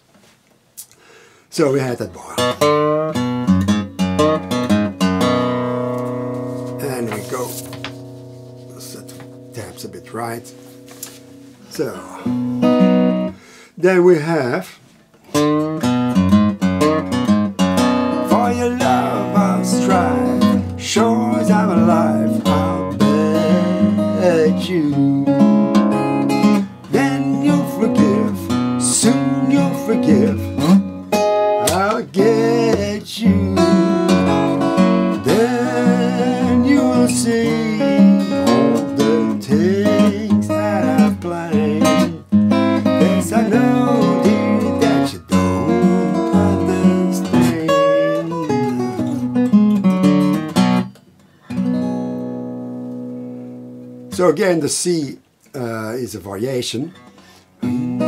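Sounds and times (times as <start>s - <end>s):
fingerpicked acoustic guitar: 1.8s - 13.4s, 14.9s - 54.5s, 56.9s - 58.0s.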